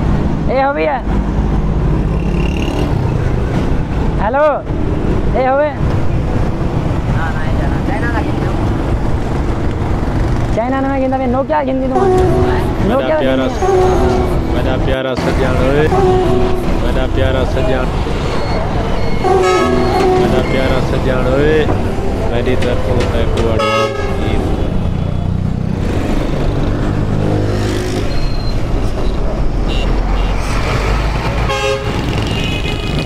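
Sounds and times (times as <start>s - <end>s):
low rumble of motor traffic: 0.0s - 33.0s
vehicle horn honk: 19.0s - 20.9s, 23.6s - 24.6s, 31.5s - 33.0s.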